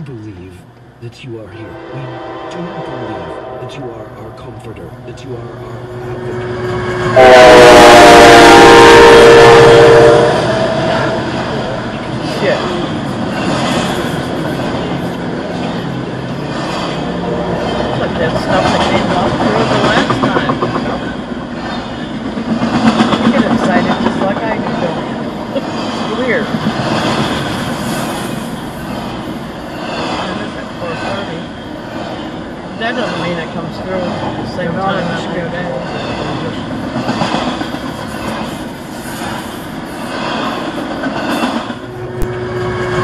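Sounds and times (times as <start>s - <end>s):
freight train rumbling past: 0.0s - 43.0s
locomotive air horn: 1.7s - 3.7s, 6.3s - 11.3s.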